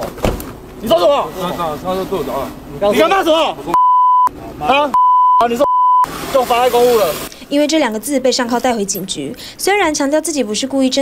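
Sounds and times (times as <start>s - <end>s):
men arguing: 0.8s - 7.3s
censor bleep tone: 3.7s - 4.3s, 4.9s - 6.1s.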